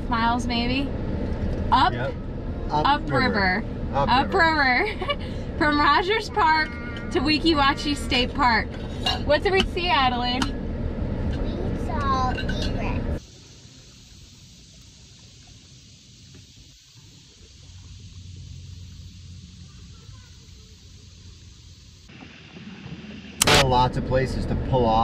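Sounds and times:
car cabin rumble: 0.0s - 13.2s, 17.6s - 25.0s
faint outdoor hiss: 0.0s - 25.0s.

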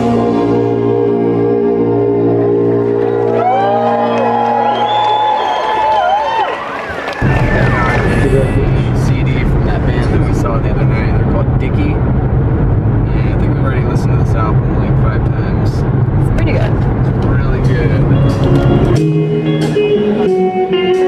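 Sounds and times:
car road and engine noise: 7.2s - 19.1s
indistinct voices: 7.2s - 20.5s.

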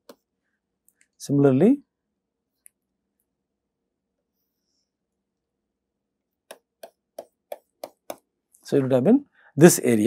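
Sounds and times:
stylus tapping on tablet screen: 0.0s - 0.3s, 6.4s - 8.4s.

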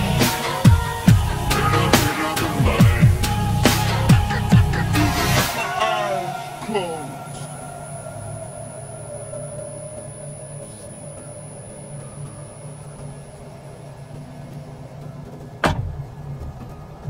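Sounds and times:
low steady hum: 0.0s - 17.0s
car door slamming: 15.6s - 16.5s.

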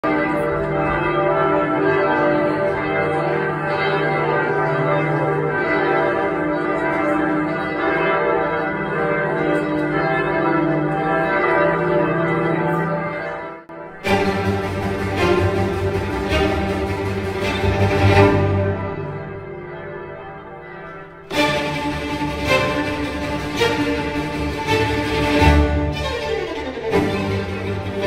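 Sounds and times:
church bells pealing: 0.0s - 28.0s.

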